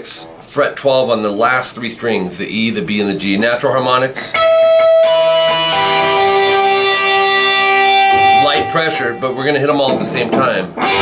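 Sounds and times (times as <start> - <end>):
electric guitar harmonics ringing: 4.3 - 11.0.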